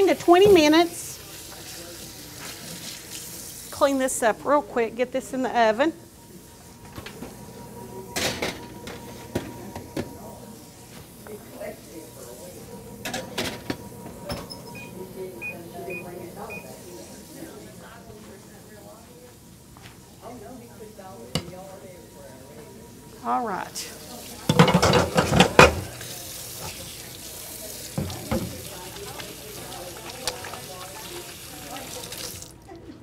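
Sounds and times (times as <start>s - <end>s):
faint voices murmuring: 0.0s - 33.0s
high electronic oven beeps: 13.4s - 16.9s
baking pan and oven door clatter: 24.5s - 25.9s.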